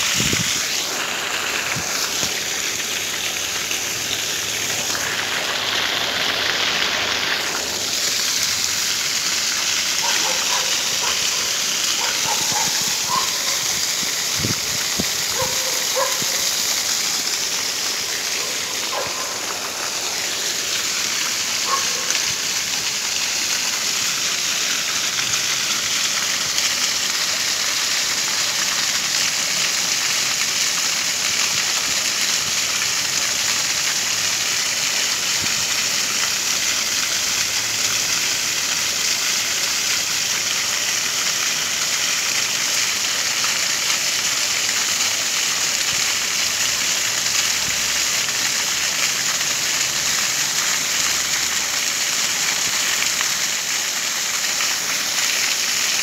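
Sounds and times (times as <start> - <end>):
fountain water splashing on paving: 0.0 - 56.0.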